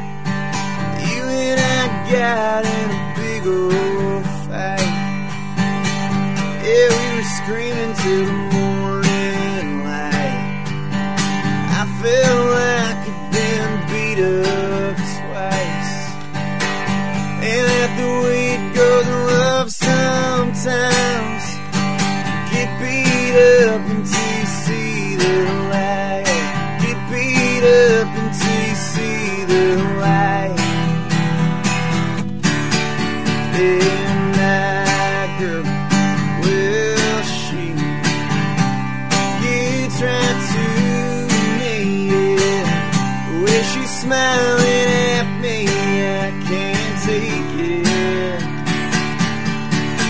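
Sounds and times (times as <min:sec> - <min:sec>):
acoustic guitar strumming: 0:00.0 - 0:50.0
man singing country song: 0:00.0 - 0:50.0.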